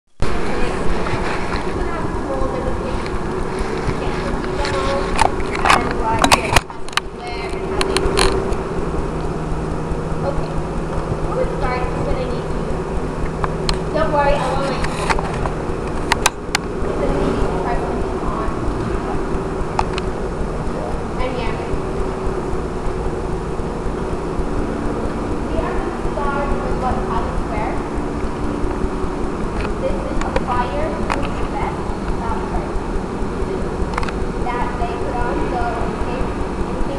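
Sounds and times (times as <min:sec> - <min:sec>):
low hum: 0:00.1 - 0:36.9
indistinct talk: 0:00.2 - 0:36.9
low rumble: 0:00.2 - 0:36.9
sharp clicks: 0:03.0 - 0:09.3.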